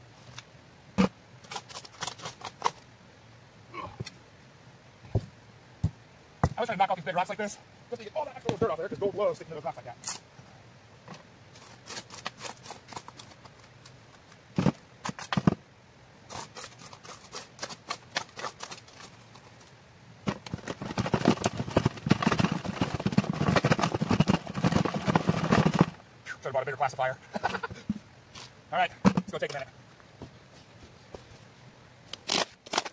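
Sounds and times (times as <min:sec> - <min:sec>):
gravel rattling on mesh screen: 0:01.0 - 0:02.8, 0:11.5 - 0:15.6, 0:16.3 - 0:26.0.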